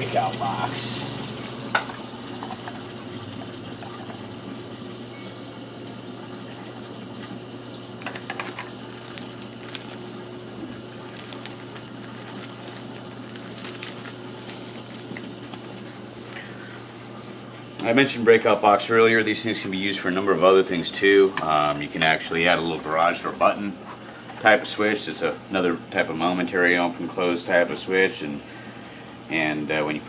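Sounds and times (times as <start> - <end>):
water rushing in aquarium sump: 0.0 - 25.4
low steady hum: 0.0 - 30.0.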